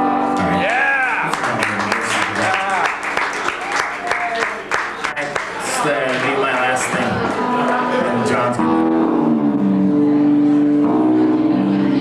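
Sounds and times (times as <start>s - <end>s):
electric guitars sustained notes: 0.0s - 2.3s, 7.1s - 12.0s.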